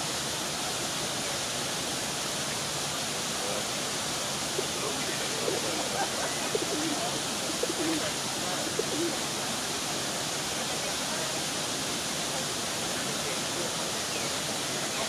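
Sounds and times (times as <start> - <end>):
waterfall rushing: 0.0 - 15.0.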